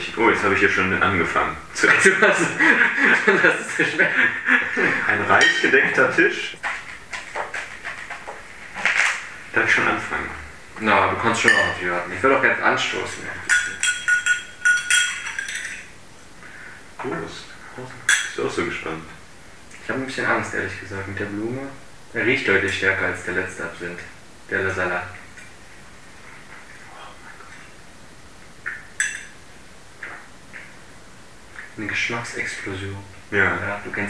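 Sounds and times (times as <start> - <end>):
spoon clinking against glass: 11.4 - 11.8, 13.4 - 15.9, 18.1 - 18.4, 29.0 - 29.4
glass click with high ring: 11.5 - 11.8, 13.5 - 15.8, 29.0 - 29.4.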